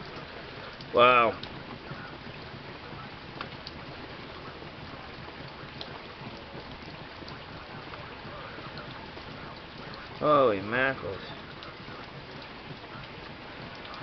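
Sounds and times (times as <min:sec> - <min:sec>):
rain falling: 0:00.0 - 0:14.0.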